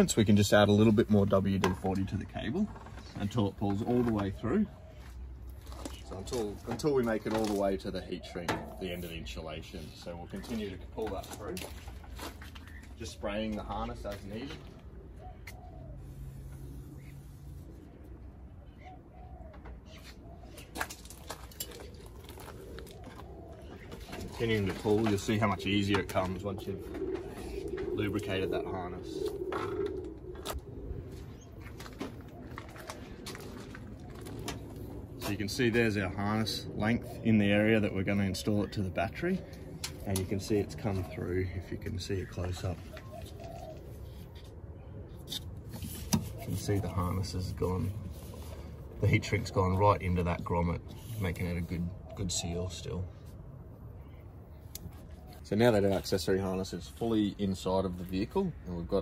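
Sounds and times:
bird calling softly: 0.7 - 59.0.

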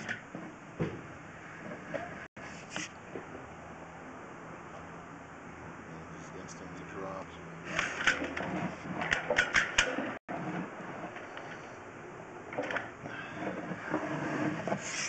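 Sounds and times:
sharp clicks and knocks: 7.7 - 11.6.

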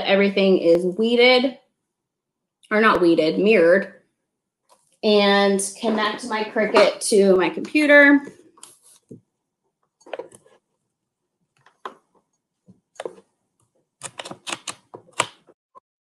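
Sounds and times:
keyboard and mouse clicks: 11.6 - 12.0, 13.0 - 15.6.

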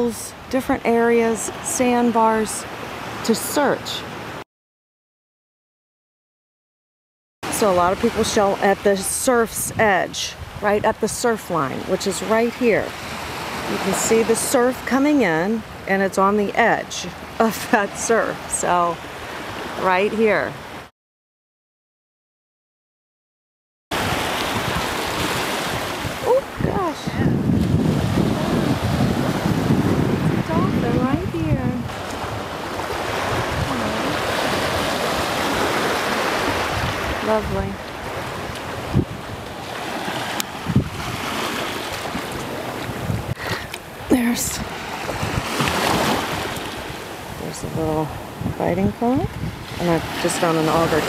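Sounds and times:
small waves washing over sand: 24.0 - 51.0
wind buffeting microphone: 24.0 - 51.0.

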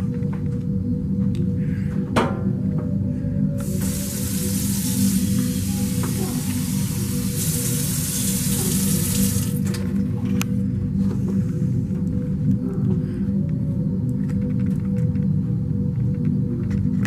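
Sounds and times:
background music: 0.0 - 17.0
faucet running into steel sink: 3.6 - 9.7.

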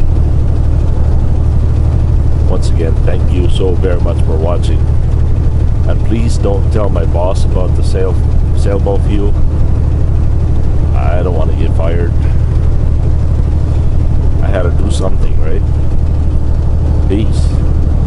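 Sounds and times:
truck engine and road noise: 0.0 - 18.0
person speaking: 10.9 - 12.4, 14.3 - 15.8, 17.0 - 17.6.

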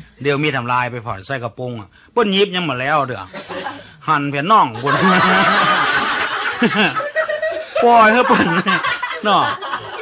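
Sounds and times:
laughter: 3.3 - 3.9, 4.7 - 10.0
man's held voice: 7.8 - 9.8.

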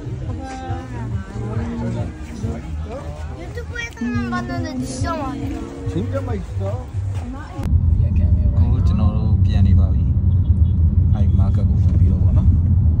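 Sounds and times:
faint voices: 0.0 - 9.4
car engine and road noise: 0.0 - 13.0.

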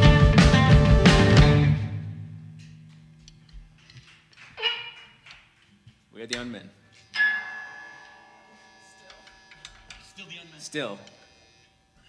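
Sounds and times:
amplified chord ringing: 0.0 - 3.5, 7.1 - 11.0.

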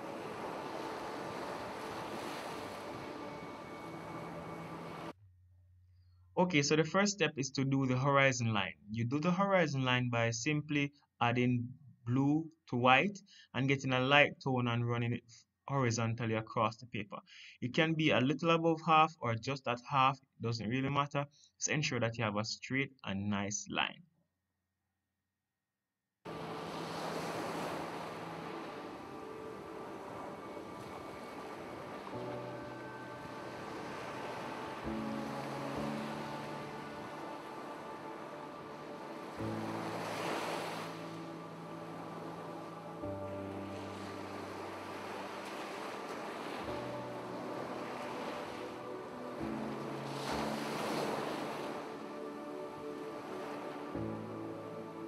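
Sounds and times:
ocean surf: 0.0 - 5.1, 26.3 - 55.0
calm background music: 0.0 - 5.2, 26.3 - 55.0.

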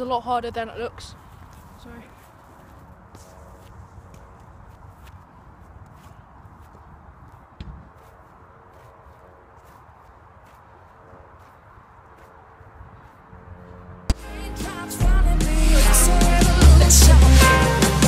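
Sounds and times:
light footsteps on grass: 0.0 - 14.1
football touches on grass: 1.4 - 11.6.

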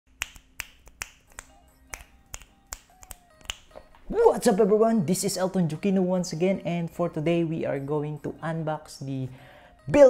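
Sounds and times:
finger snaps: 0.1 - 4.0
faint music tones: 1.2 - 10.0.

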